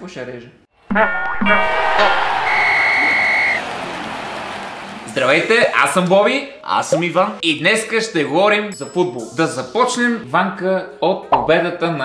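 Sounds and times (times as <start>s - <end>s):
steady whistle tone: 0.9s - 5.9s
crowd noise: 0.9s - 6.1s.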